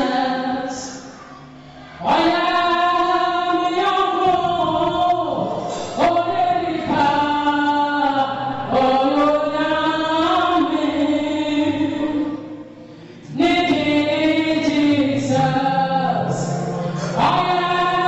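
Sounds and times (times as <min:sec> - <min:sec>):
woman singing into a microphone: 0:00.0 - 0:01.1, 0:01.9 - 0:18.0
congregation singing along: 0:00.0 - 0:18.0.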